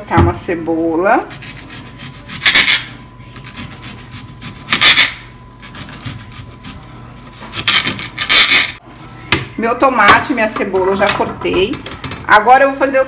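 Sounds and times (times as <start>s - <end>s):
knife slicing through onion: 1.2s - 8.6s.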